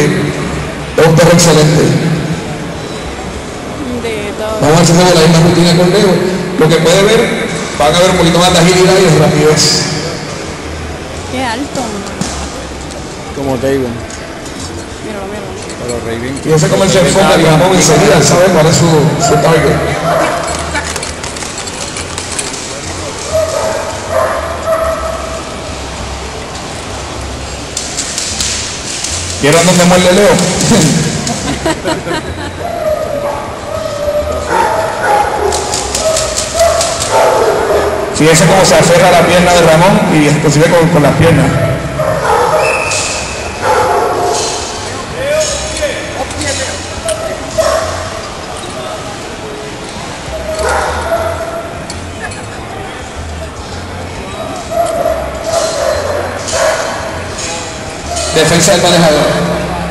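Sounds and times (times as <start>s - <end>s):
crowd chatter: 0.0s - 59.9s
people talking: 3.8s - 9.9s, 11.3s - 14.0s, 15.0s - 21.0s, 29.4s - 32.6s, 44.9s - 47.5s
dog barking: 19.2s - 20.6s, 23.3s - 25.4s, 32.7s - 38.2s, 42.0s - 42.9s, 43.6s - 44.6s, 47.1s - 48.2s, 50.4s - 51.7s, 54.7s - 57.2s.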